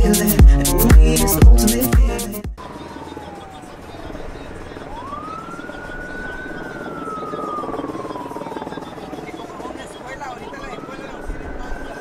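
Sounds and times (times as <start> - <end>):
helicopter rumble: 2.6 - 12.0
siren wailing: 2.6 - 12.0.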